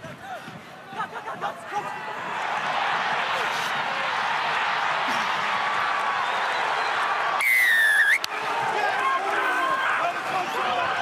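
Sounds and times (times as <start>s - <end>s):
stadium crowd cheering: 0.0s - 11.0s
referee's whistle blast: 7.4s - 8.3s.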